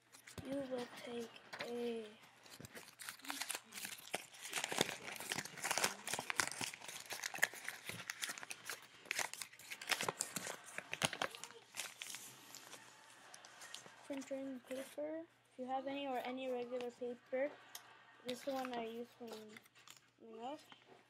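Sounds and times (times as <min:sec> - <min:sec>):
paper crumpling: 0:00.0 - 0:15.0, 0:18.3 - 0:20.8.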